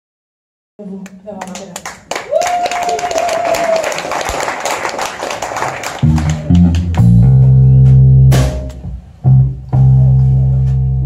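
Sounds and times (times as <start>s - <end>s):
audience clapping: 1.0s - 7.5s.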